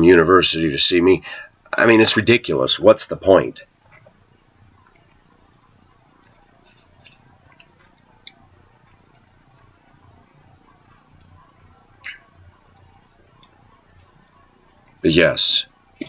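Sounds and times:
faint clicks: 3.8 - 15.0.

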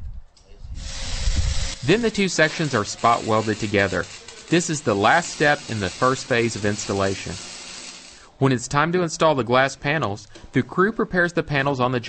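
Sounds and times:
arc welding hiss: 0.8 - 8.3.

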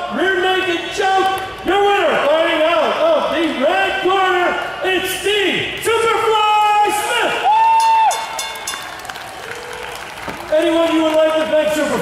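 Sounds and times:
crowd cheering and applauding: 6.8 - 12.0.

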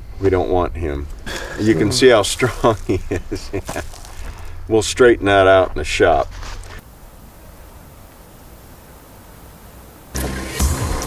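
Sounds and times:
music: 10.1 - 11.0.

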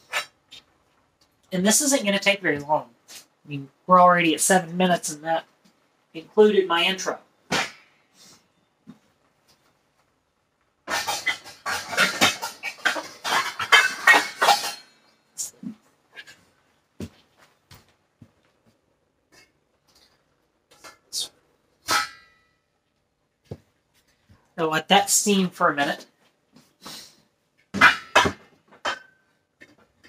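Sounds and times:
metal pots and pans clattering: 10.9 - 15.5, 21.8 - 22.4, 27.8 - 29.8.

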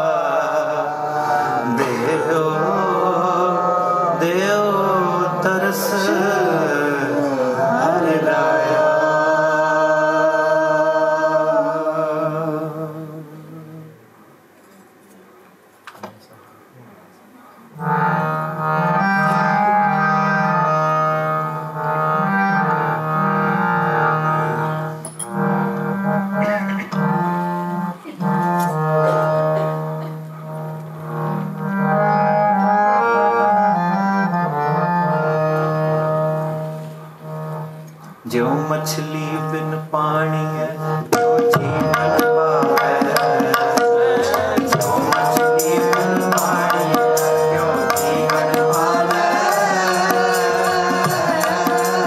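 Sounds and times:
harmonium melody over drone: 0.0 - 13.9, 17.7 - 52.0.

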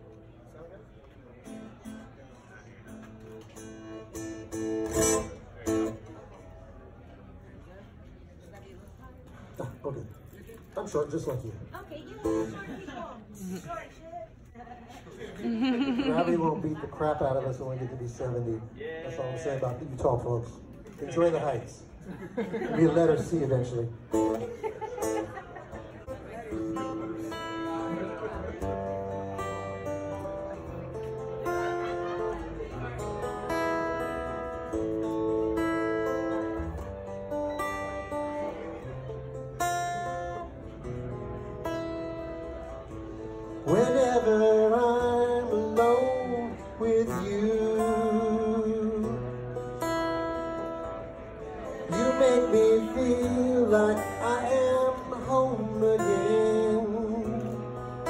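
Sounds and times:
acoustic guitar strummed: 1.4 - 6.6, 12.2 - 12.8, 23.1 - 58.0
background voices: 42.5 - 58.0.

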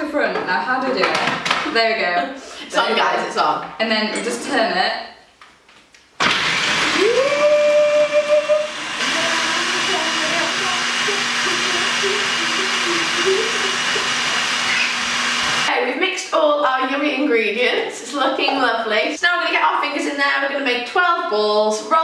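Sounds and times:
food processor motor whine: 6.2 - 15.7.

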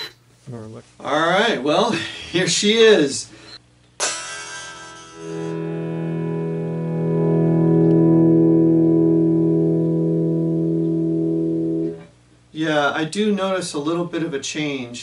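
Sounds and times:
electric guitar chord ringing: 4.0 - 12.0.

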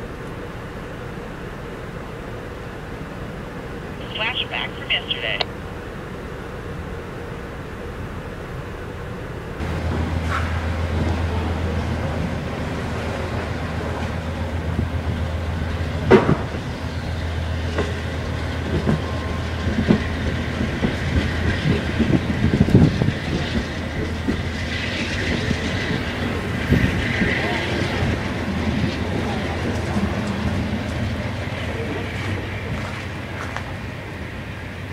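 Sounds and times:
passenger train rolling past: 0.0 - 34.9.

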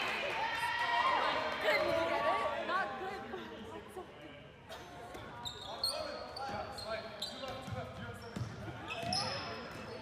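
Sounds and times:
sneakers squeaking: 5.0 - 10.0.

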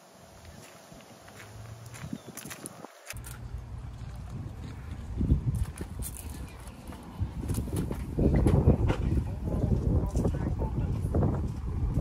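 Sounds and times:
faint footsteps: 0.4 - 12.0.

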